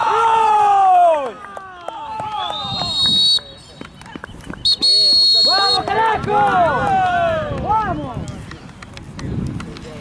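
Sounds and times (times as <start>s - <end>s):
referee's whistle blasts: 2.4s - 3.8s, 4.6s - 5.9s
players shouting: 4.9s - 8.1s.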